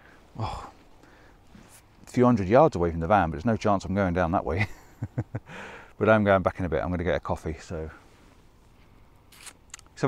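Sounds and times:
soft rustling: 0.1s - 2.6s, 7.8s - 9.7s.

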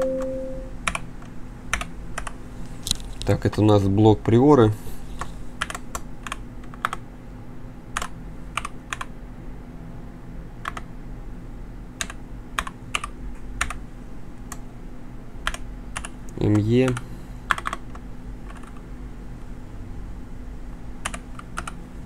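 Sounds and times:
steady low hum: 0.0s - 22.0s
computer keyboard keys clicking: 1.7s - 2.4s, 5.2s - 7.0s, 8.0s - 9.1s, 10.6s - 10.9s, 12.0s - 13.8s, 15.4s - 18.8s, 21.0s - 21.8s.

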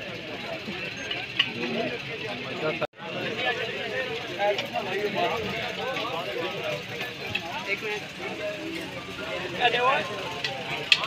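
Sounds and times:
crowd conversation: 0.0s - 11.0s.

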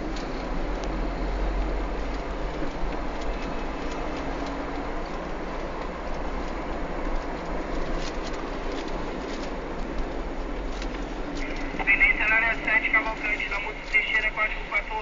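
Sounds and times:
car road and engine rumble: 0.0s - 15.0s.

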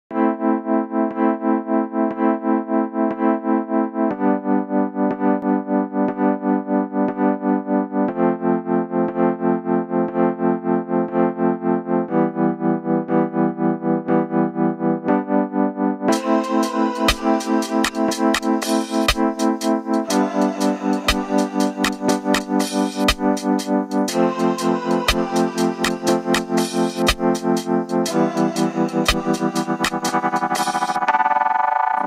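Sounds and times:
pulsing synthesizer chords: 0.1s - 32.0s.

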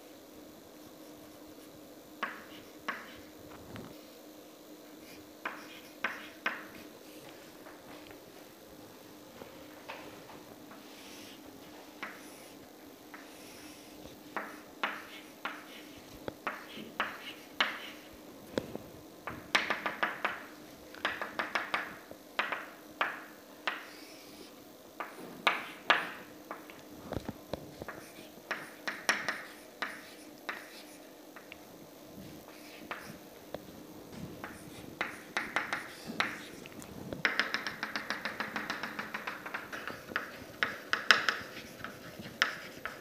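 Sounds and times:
chalk tapping on blackboard: 2.2s - 3.3s, 5.4s - 7.4s, 12.0s - 18.1s, 19.3s - 24.1s, 25.0s - 26.7s, 27.8s - 31.5s, 32.5s - 33.2s, 34.4s - 36.6s, 37.2s - 43.0s.

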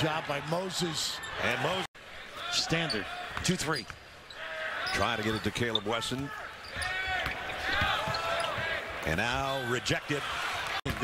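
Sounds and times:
sneakers squeaking on hardwood: 4.9s - 8.8s.

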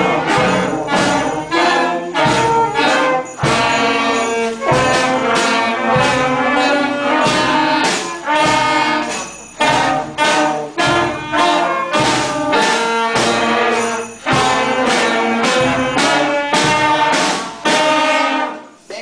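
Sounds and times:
concert band playing accented chords: 0.0s - 18.9s.

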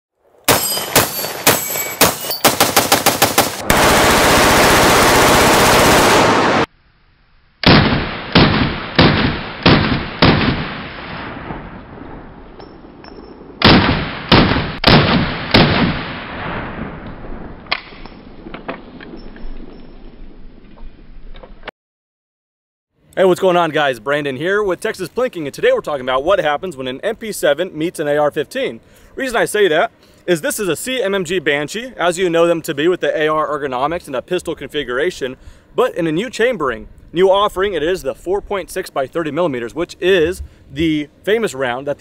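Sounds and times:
rapid automatic gunfire: 2.4s - 6.7s.

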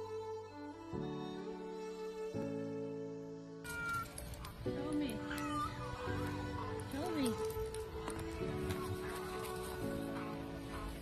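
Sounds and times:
background music: 0.0s - 11.0s
peacock calling: 3.6s - 7.5s.

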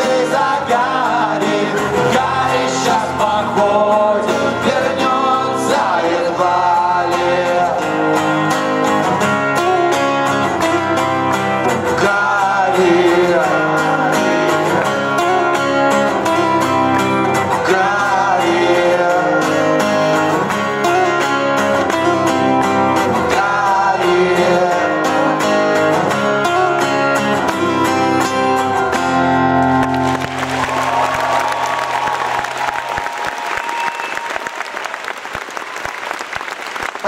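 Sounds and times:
man singing: 0.0s - 8.6s, 11.6s - 16.7s, 17.3s - 20.4s, 22.9s - 28.6s
strummed acoustic guitars: 0.0s - 32.8s.

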